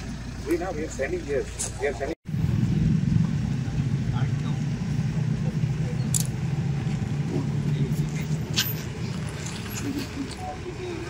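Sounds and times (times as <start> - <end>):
low rumble: 2.3 - 9.8.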